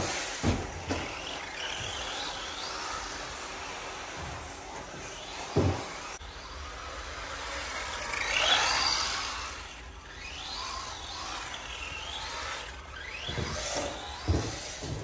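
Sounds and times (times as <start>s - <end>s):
electric motor whining: 0.0s - 15.0s
dull thumps: 0.3s - 2.0s, 13.0s - 15.0s.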